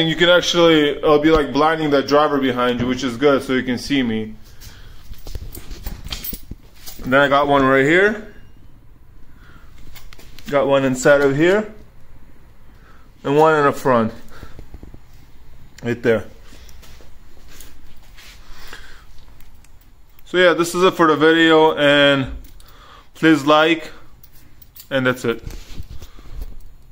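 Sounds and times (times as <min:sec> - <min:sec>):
low steady hum: 0:00.0 - 0:26.9.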